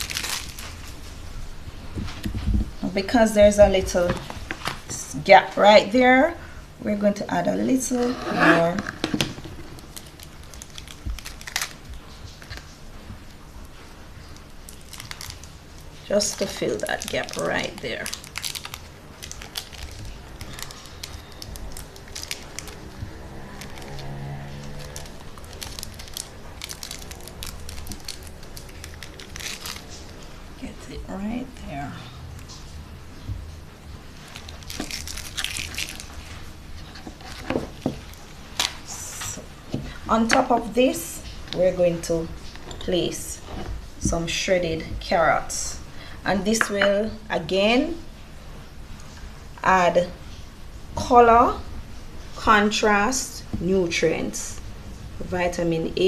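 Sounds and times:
food handling noise: 0.0 - 1.3, 7.9 - 30.5, 32.1 - 45.1
rustle of wrapping: 0.0 - 1.4, 9.7 - 30.6, 32.0 - 40.1
faint music: 0.0 - 56.0.

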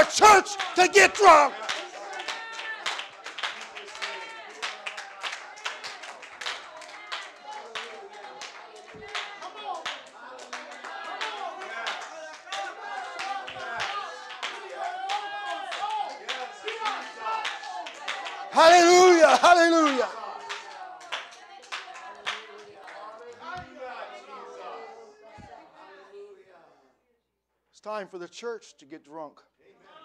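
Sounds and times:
many voices calling out: 0.0 - 3.0, 7.8 - 22.6
congregation clapping: 0.0 - 24.2.

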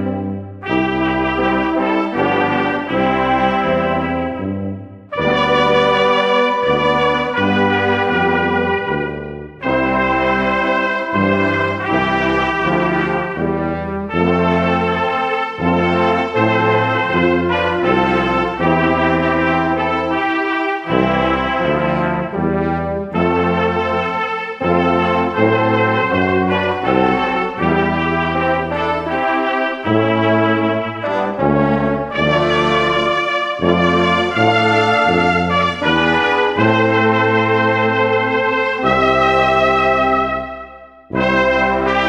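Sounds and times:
brass band playing a carol: 0.0 - 42.0.

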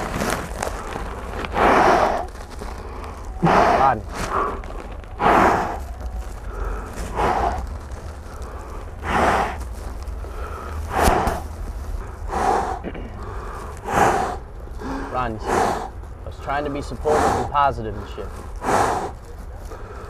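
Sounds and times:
man breathing hard: 0.6 - 20.0.

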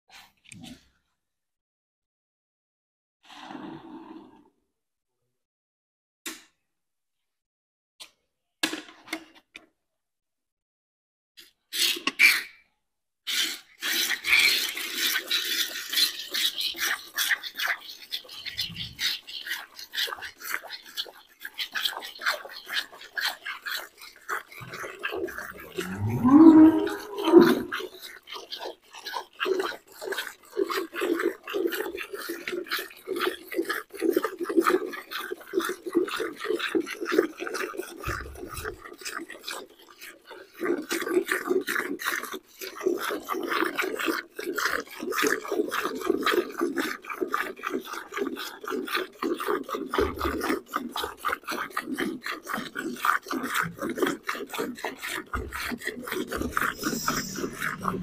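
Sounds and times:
milk squirting into metal bucket: 13.3 - 58.0
cow low call: 25.7 - 27.7, 56.3 - 58.0.

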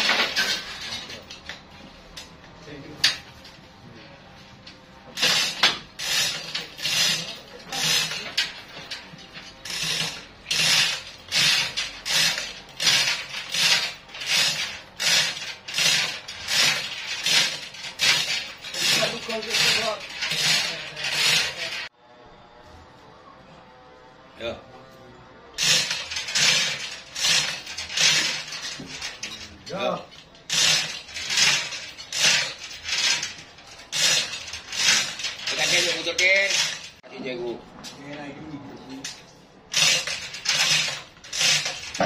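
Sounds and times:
chain rattle and ratchet clicking: 0.0 - 2.4, 5.1 - 21.9, 25.6 - 37.0, 38.9 - 42.0.

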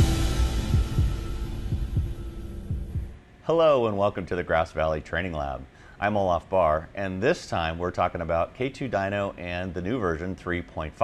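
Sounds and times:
electronic music: 0.0 - 3.2.

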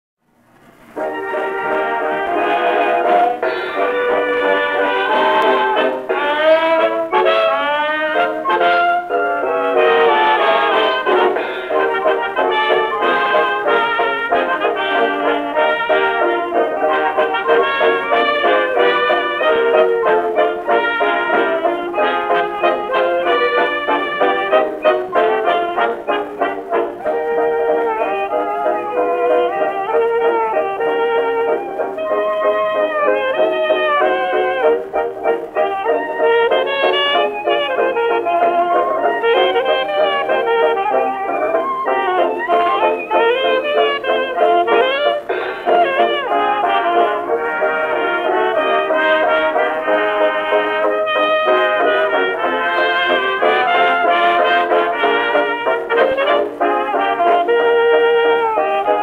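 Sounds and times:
old recording of dance orchestra: 0.2 - 59.0.

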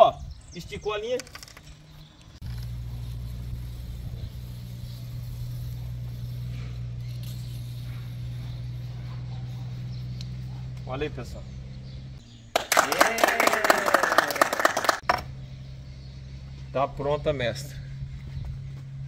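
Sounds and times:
steady low hum: 2.4 - 12.6, 15.1 - 19.0.

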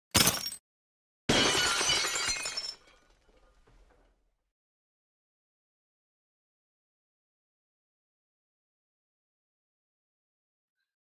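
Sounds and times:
glass shattering crash: 0.1 - 0.6, 1.3 - 3.2.

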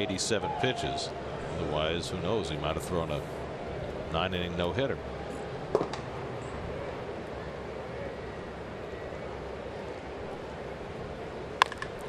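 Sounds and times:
crowd murmur: 0.0 - 11.6
bat cracking a ball: 5.7 - 6.1, 11.6 - 12.0.

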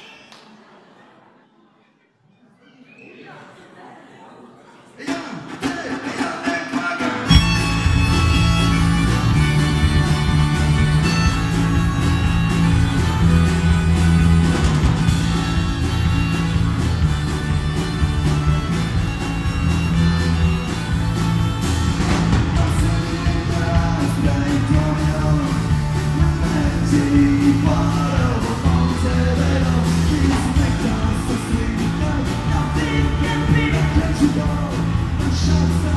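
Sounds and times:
drums: 5.0 - 35.9
harmonica: 7.2 - 28.1
electric guitar: 7.2 - 35.9
electric bass: 7.3 - 35.9.

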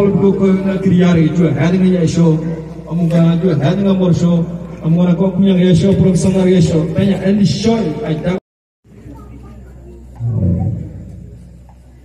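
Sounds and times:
man's voice over loudspeaker: 0.0 - 8.4.

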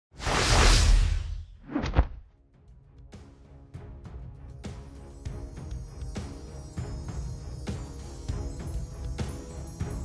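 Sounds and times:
whoosh sound effect: 0.1 - 2.1.

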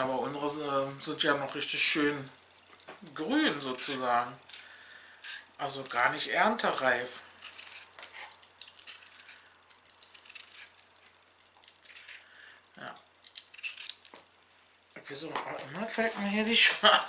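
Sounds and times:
potato peeling scraping: 1.4 - 14.3.

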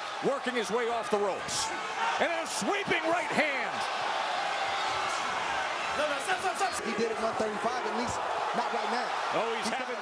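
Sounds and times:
arena crowd noise: 0.0 - 10.0
commentators talking: 5.9 - 10.0.

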